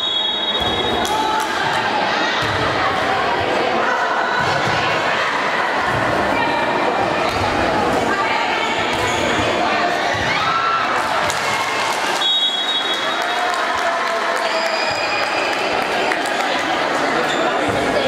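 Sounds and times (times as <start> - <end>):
echoing crowd voices: 0.0 - 18.0.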